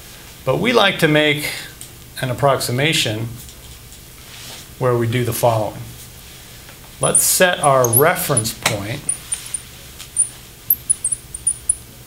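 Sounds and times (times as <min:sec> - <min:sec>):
marker squeaking on glass: 0:07.0 - 0:09.6, 0:10.2 - 0:11.8.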